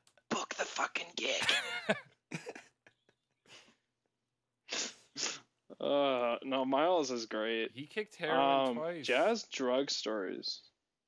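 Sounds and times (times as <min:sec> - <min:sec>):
man speaking: 0:05.7 - 0:10.7.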